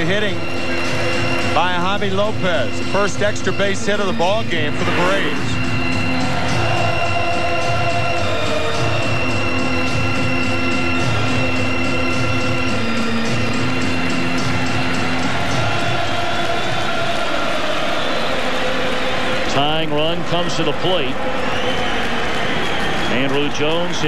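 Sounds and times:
crowd noise: 0.0 - 24.0
stadium music over loudspeakers: 0.0 - 24.0.

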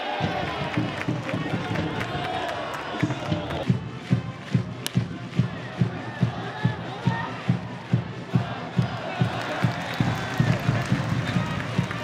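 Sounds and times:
stadium crowd shouting: 0.0 - 3.8, 5.2 - 12.0.

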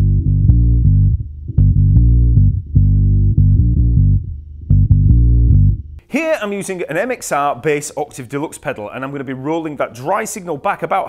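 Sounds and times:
deep synth-like bass riff: 0.0 - 6.0.

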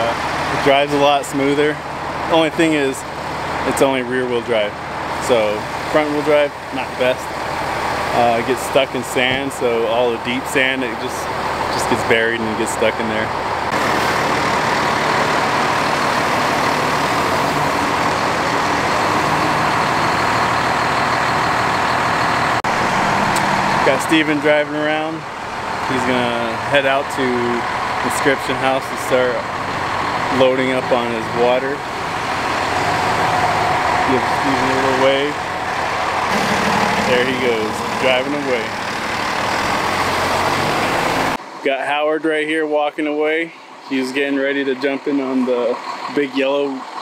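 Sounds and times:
diesel truck engine idling: 0.0 - 47.0.

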